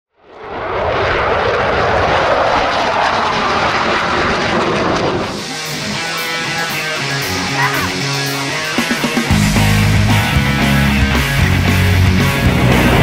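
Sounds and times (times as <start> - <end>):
aircraft engine roar: 0.2 - 13.0
music: 5.4 - 13.0.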